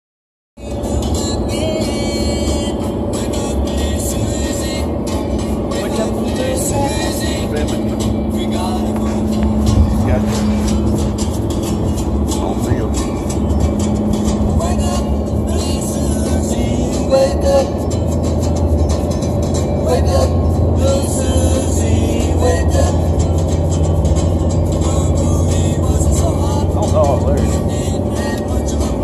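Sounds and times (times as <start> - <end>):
car road and engine rumble: 0.6 - 29.0
song with strummed guitar: 0.6 - 29.0.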